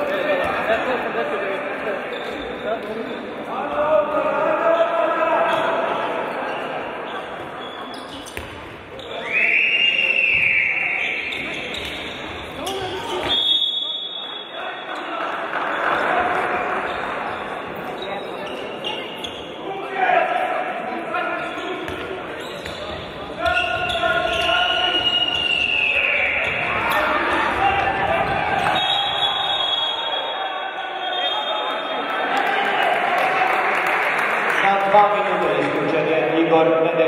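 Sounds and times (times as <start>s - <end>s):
ball bouncing on wooden court: 8.2s - 8.8s
referee whistle blasts: 9.0s - 11.9s, 13.2s - 14.6s, 23.6s - 26.6s, 28.6s - 32.0s.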